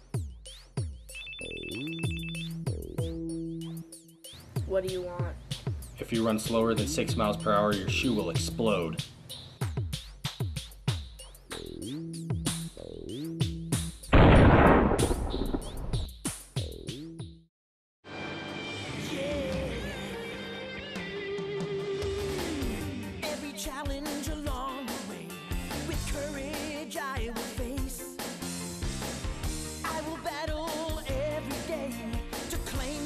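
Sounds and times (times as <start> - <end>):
electronic music with drum hits: 0.0 - 8.7, 9.5 - 17.4
electronic music: 1.0 - 4.0
telephone ringing: 1.1 - 2.6
loud explosion: 14.1 - 16.1.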